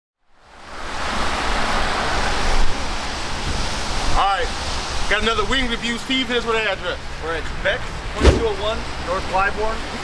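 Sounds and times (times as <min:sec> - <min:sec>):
tyres hissing on wet road: 0:00.4 - 0:10.0.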